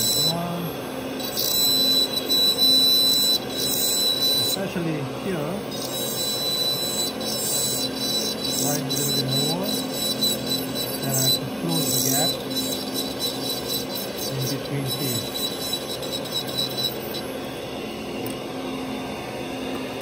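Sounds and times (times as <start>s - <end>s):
dental handpiece high whine: 0.0s - 20.0s.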